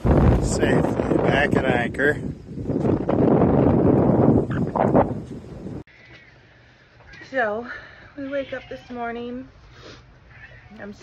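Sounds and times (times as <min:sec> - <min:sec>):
wind blowing across microphone: 0:00.0 - 0:05.9.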